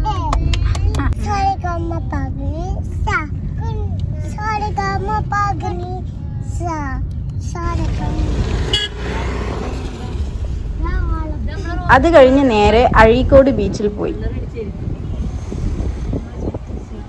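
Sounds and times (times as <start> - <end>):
road noise hiss: 1.2 - 17.0.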